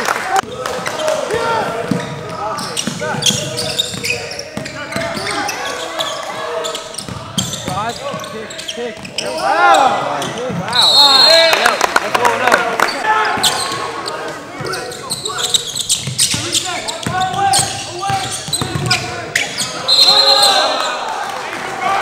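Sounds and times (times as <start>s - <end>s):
people shouting: 19.7s - 22.0s.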